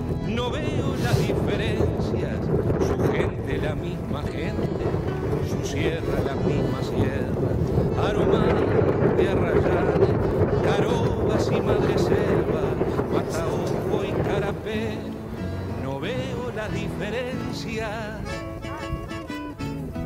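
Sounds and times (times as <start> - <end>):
music: 0.0 - 20.0
wind buffeting microphone: 0.0 - 20.0
voices: 0.3 - 20.0.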